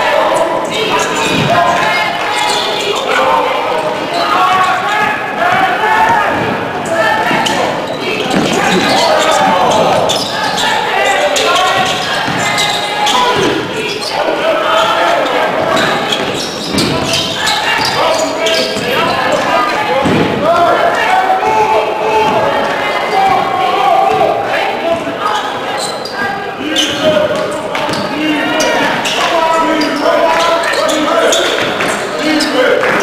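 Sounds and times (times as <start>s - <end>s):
indistinct echoing voices: 0.0s - 33.0s.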